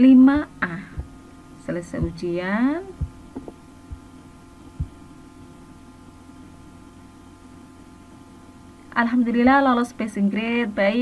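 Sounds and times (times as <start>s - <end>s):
steady low hum: 0.0s - 11.0s
soft dull thumps: 1.8s - 4.1s, 4.7s - 5.0s.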